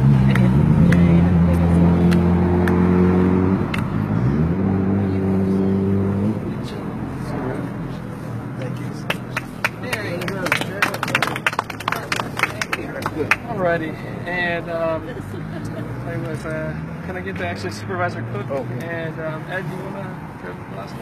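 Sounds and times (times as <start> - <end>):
vehicle engine humming: 0.0 - 21.0.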